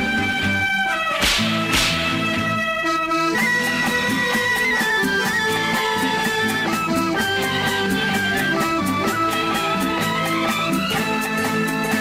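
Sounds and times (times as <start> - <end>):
orchestra playing held melody: 0.0 - 12.0
stepping bass line: 1.1 - 2.9
crashing percussion hits: 1.2 - 2.2.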